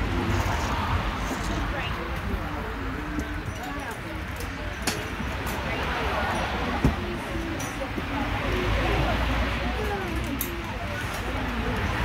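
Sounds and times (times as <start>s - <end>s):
people talking: 0.0s - 12.0s.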